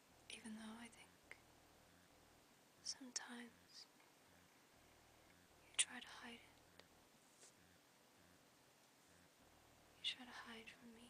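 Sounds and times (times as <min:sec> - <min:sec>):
person whispering: 0:00.3 - 0:02.1, 0:02.8 - 0:04.5, 0:05.3 - 0:06.8, 0:10.0 - 0:11.0.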